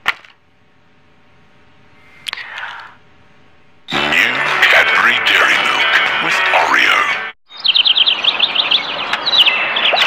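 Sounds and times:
distorted voice and music: 0:03.9 - 0:07.4
high bird-like chirps: 0:07.5 - 0:10.0.

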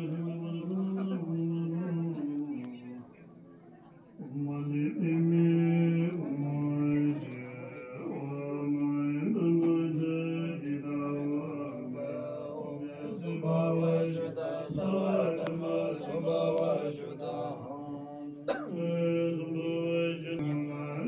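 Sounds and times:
monks chanting: 0:00.0 - 0:03.0, 0:04.2 - 0:21.0.

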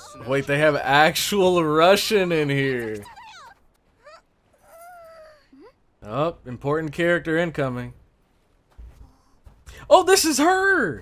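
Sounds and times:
high-pitched cartoon voice: 0:03.0 - 0:05.8.

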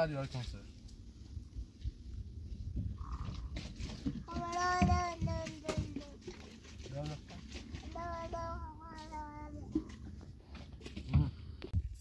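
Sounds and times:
child singing long notes: 0:04.3 - 0:05.9, 0:07.9 - 0:09.8.

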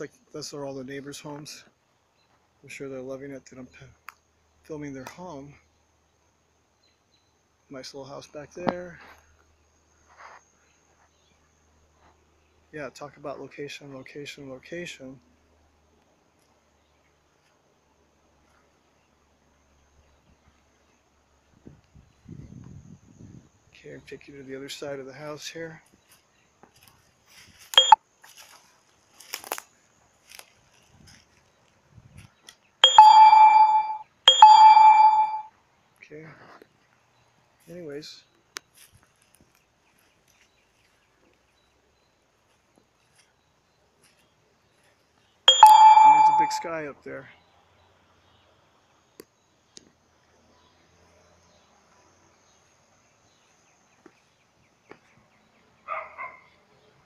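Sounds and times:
ringing dings: 0:32.8 - 0:35.5, 0:45.5 - 0:46.7
dog barking: 0:55.8 - 0:56.5.

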